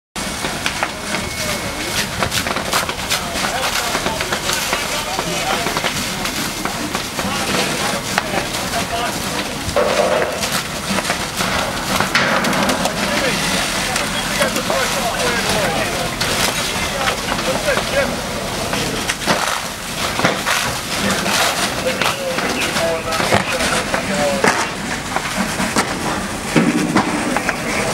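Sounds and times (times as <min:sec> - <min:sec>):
fire crackling and popping: 0:00.2 - 0:27.9
fire hose spraying: 0:00.2 - 0:27.9
background voices: 0:00.4 - 0:26.3.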